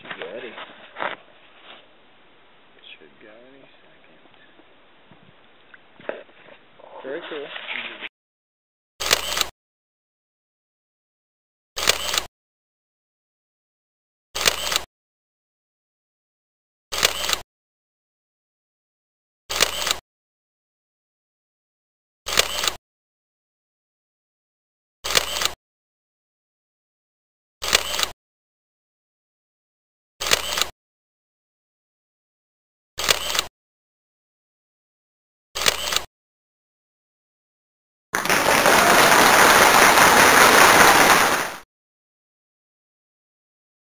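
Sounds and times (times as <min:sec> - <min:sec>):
camera shutter double click: 0:09.0 - 0:09.5, 0:11.8 - 0:12.3, 0:14.4 - 0:14.9, 0:16.9 - 0:17.4, 0:25.1 - 0:25.6, 0:27.6 - 0:28.1, 0:30.2 - 0:30.7, 0:33.0 - 0:33.5, 0:35.6 - 0:36.1.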